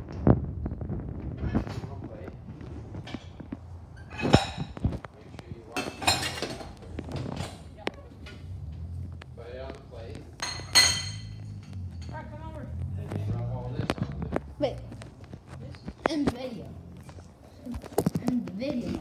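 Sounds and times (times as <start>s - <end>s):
plates and cutlery clinking: 3.0s - 5.0s, 5.7s - 8.8s, 10.3s - 12.2s
voices: 5.0s - 19.0s.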